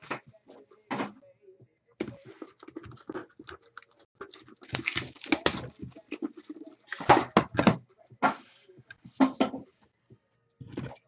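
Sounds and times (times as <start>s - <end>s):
plastic wrapping tearing and crumpling: 4.2s - 7.3s.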